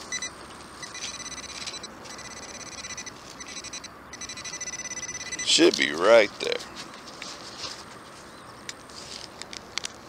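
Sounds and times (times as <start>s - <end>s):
metal detector pulsing buzz: 0.0s - 5.7s.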